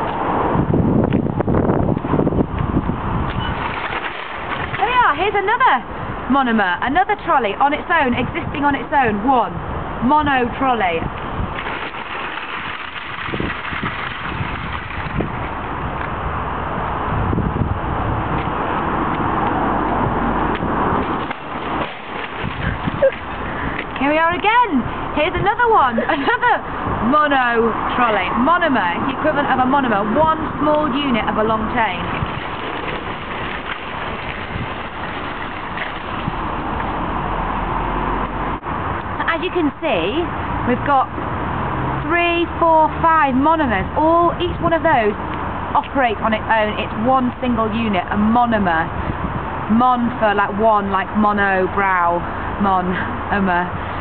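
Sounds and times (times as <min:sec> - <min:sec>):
wind noise on microphone: 0:00.0 - 0:54.0
shopping trolleys rattling: 0:03.4 - 0:05.2, 0:11.6 - 0:15.6, 0:31.0 - 0:36.4.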